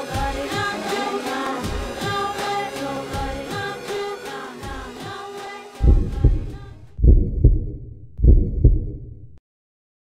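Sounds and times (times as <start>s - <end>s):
deep bass heartbeat thumps: 5.8s - 9.4s.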